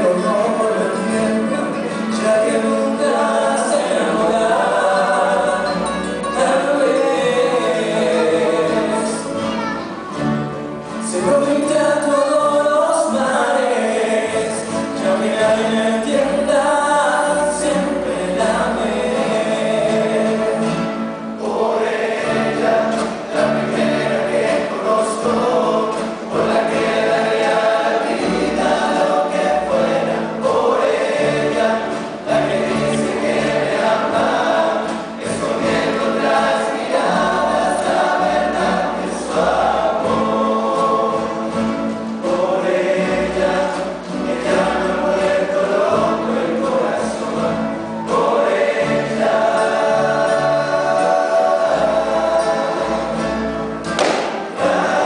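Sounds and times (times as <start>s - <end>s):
male chorus singing: 0.0s - 9.4s, 10.8s - 55.0s
acoustic guitars: 0.0s - 55.0s
double bass: 0.0s - 55.0s.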